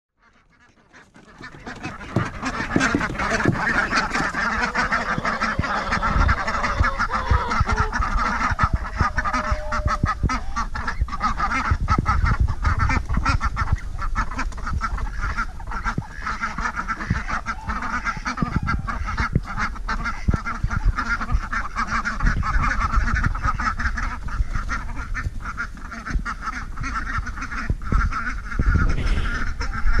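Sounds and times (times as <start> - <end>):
ducks calling: 0.2 - 30.0.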